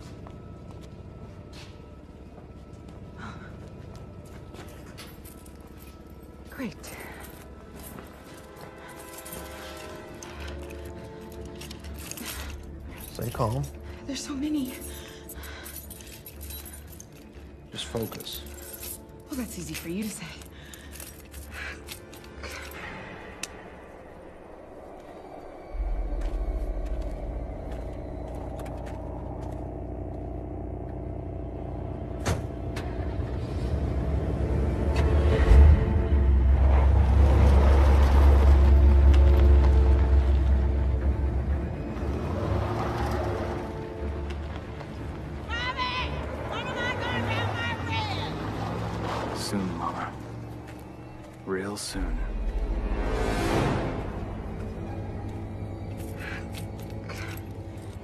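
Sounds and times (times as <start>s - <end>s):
tense music score: 0.0s - 58.0s
deep low rumble: 23.4s - 42.3s.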